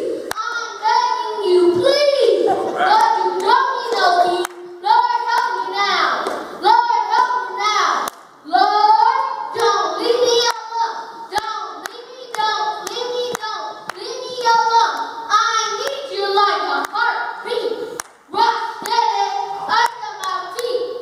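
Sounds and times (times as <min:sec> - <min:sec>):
boy rapping into microphone: 0:00.0 - 0:21.0
sharp handclaps: 0:03.0 - 0:04.6, 0:08.0 - 0:08.3, 0:18.0 - 0:19.0.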